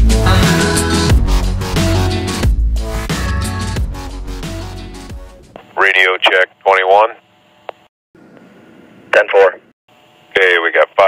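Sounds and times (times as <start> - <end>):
music: 0.0 - 5.6
man talking over two-way radio: 5.6 - 7.2, 9.1 - 9.6, 10.3 - 11.0.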